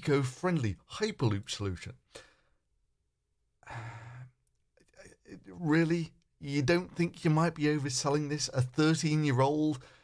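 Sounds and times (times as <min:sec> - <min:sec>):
man sighing: 0:03.6 - 0:04.4.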